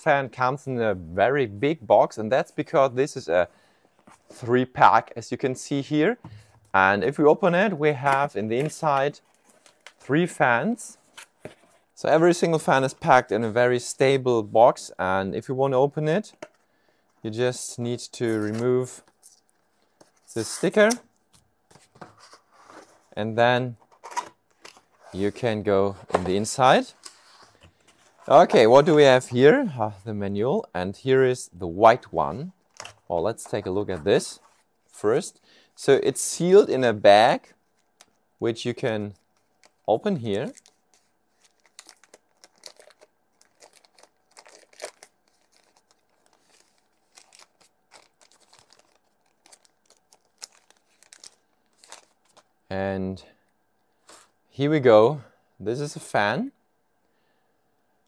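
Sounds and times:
rustles and scrapes of cardboard: 0:21.7 - 0:23.2, 0:23.8 - 0:29.2
plastic bag crinkling and tearing: 0:39.1 - 0:52.5.

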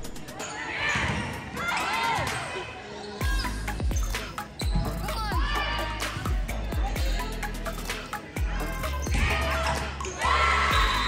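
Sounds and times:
voices in gym: 0:00.0 - 0:11.0
shoes squeaking on gym floor: 0:02.9 - 0:05.4
music with deep bass beat: 0:03.2 - 0:09.6, 0:10.7 - 0:11.0.

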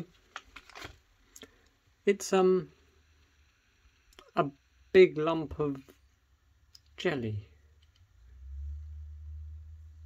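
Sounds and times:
foil wrapper clicks and rustles: 0:00.2 - 0:01.0.

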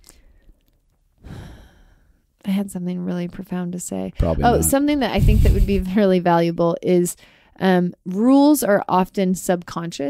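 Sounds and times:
person sighing: 0:01.2 - 0:02.0.

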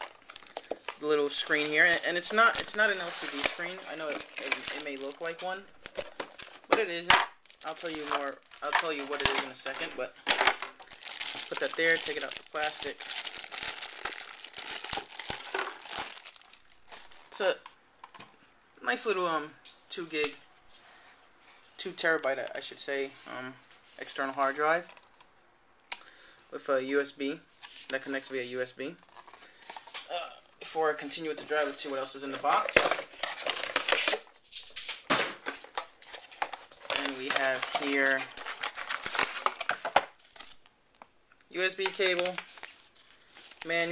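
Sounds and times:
plastic bag crinkling: 0:00.0 - 0:17.6, 0:35.7 - 0:40.7
cardboard packaging rustling: 0:00.0 - 0:17.7, 0:30.8 - 0:41.0, 0:41.7 - 0:43.9.

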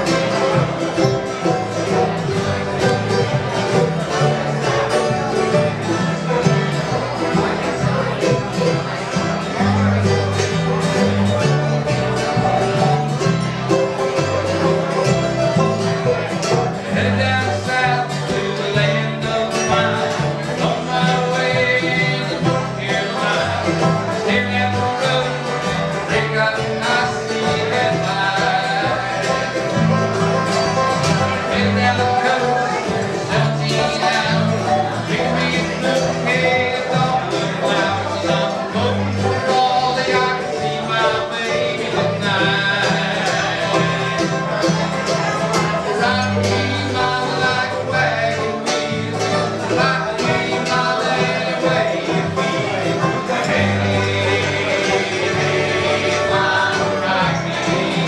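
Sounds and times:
acoustic guitar: 0:00.0 - 0:58.0
banjo: 0:00.0 - 0:58.0
mandolin: 0:00.0 - 0:58.0.

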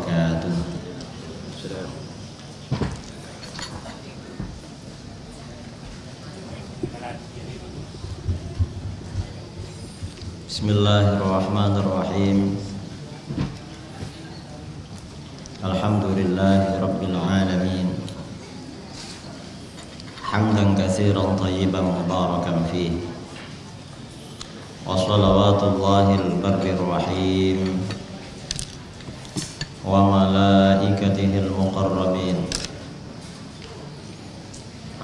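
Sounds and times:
man chanting into a microphone: 0:24.8 - 0:27.9, 0:29.8 - 0:32.6.

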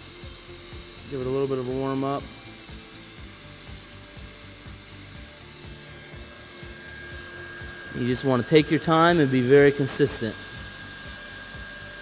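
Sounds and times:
hot-air welding gun blower hissing: 0:00.0 - 0:12.0.

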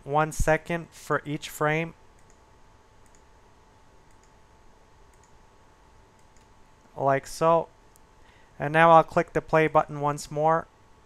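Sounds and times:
faint steady hum: 0:00.0 - 0:11.0
computer mouse clicks: 0:02.2 - 0:02.4, 0:03.0 - 0:03.3, 0:04.1 - 0:04.4, 0:05.1 - 0:05.4, 0:06.1 - 0:06.6.

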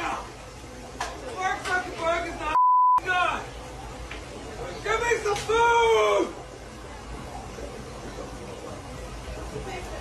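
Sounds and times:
censor bleep: 0:02.6 - 0:03.0
man shouting angrily: 0:04.9 - 0:06.4.

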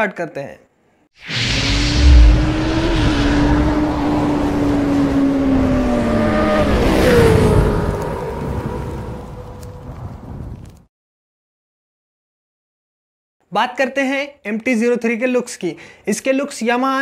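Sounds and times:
heavy low thump: 0:01.9 - 0:03.7.

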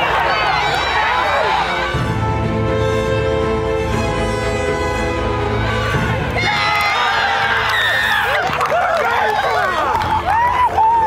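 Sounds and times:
crowd cheering and shouting: 0:00.0 - 0:02.4, 0:05.4 - 0:11.0
background music: 0:00.0 - 0:11.0.

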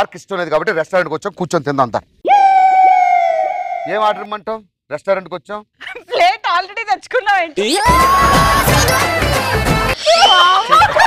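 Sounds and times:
man speaking: 0:07.6 - 0:07.9.

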